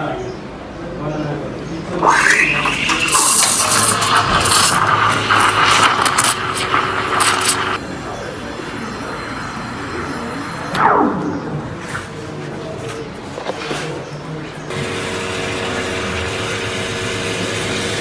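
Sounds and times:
steam wand squeal: 2.0 - 4.6
steam wand hissing: 2.0 - 7.8.

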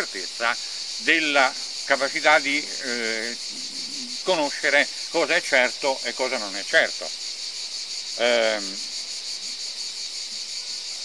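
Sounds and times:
insects singing: 0.0 - 11.0.

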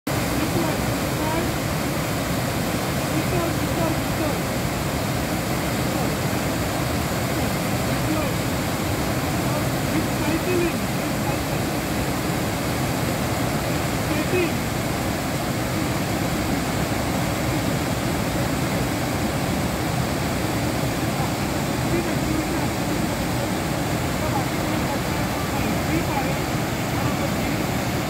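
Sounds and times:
water rushing over rocks: 0.1 - 28.0.

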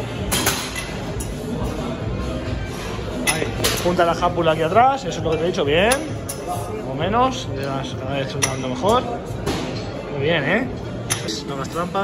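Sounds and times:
gym background music: 0.0 - 12.0.

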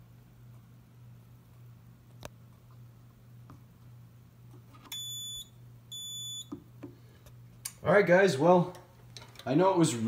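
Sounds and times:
short high beeps: 4.9 - 6.5.

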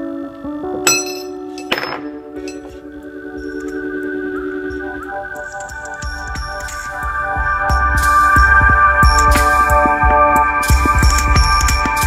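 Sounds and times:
metal tube clanging: 0.8 - 2.9.

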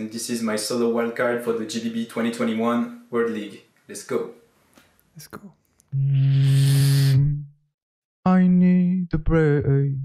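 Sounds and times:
beatboxer low breathy note: 6.0 - 7.4.

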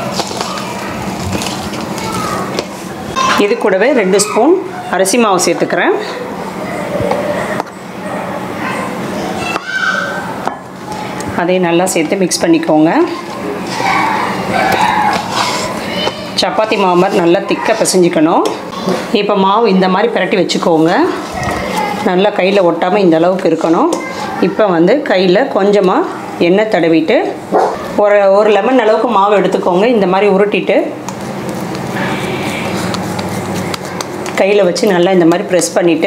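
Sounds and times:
hands squishing dough: 0.0 - 3.6, 13.0 - 19.1, 31.0 - 35.8
steady background noise: 0.0 - 36.0.

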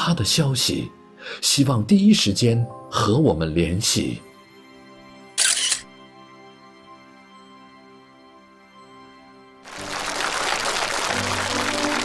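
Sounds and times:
background music: 0.0 - 12.0
audience applauding: 9.7 - 12.0.

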